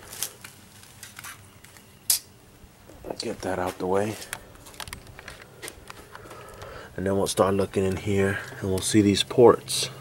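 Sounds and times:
gasket handling clicks and rustles: 4.2 - 6.7.

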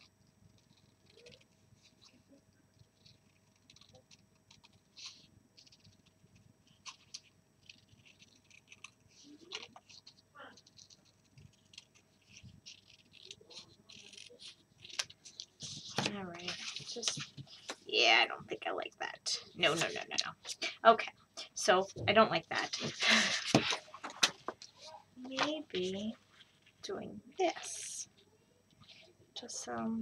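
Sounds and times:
paper crinkling: 0.0 - 17.8
scissors cutting paper: 6.8 - 17.4.

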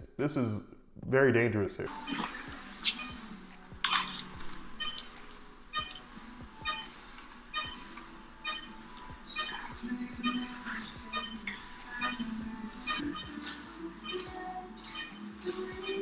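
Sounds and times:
vital signs monitor beeping: 1.9 - 16.0.

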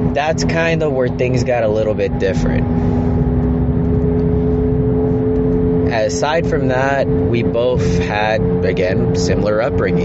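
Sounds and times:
car engine and road rumble: 0.0 - 10.0
constant low hum: 0.0 - 10.0.

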